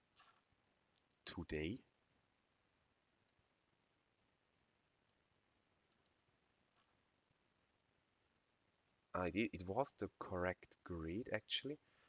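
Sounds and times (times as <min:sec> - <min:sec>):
computer mouse clicks: 0:05.0 - 0:05.2, 0:05.9 - 0:06.2.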